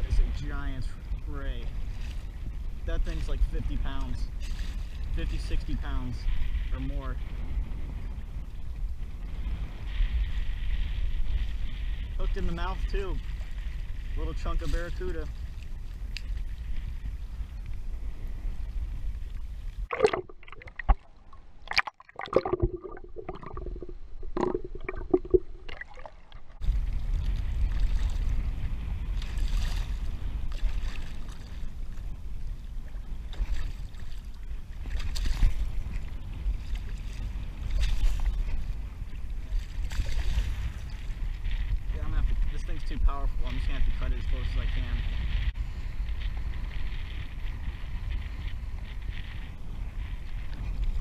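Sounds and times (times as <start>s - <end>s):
water splashing against kayak: 0.0s - 51.0s
wind on microphone: 0.0s - 51.0s.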